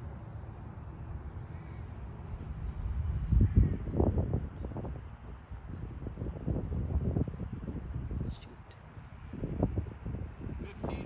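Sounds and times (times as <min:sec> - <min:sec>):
wind rumble on microphone: 0:01.6 - 0:11.0.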